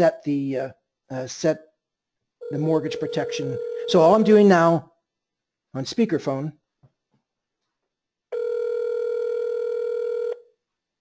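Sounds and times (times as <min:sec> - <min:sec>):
telephone ringback tone: 0:02.4 - 0:04.3, 0:08.4 - 0:10.4.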